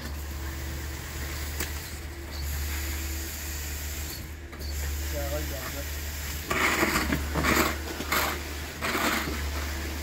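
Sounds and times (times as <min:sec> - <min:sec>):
concrete pump rumbling: 0:00.0 - 0:10.0.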